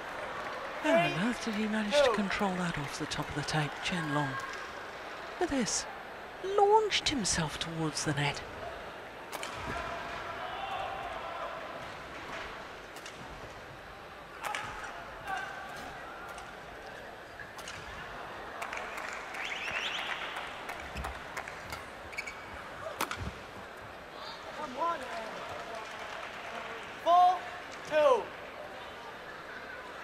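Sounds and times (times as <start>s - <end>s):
crowd murmur and chatter: 20.4s - 30.0s
shoe squeaks on court: 22.1s - 22.6s.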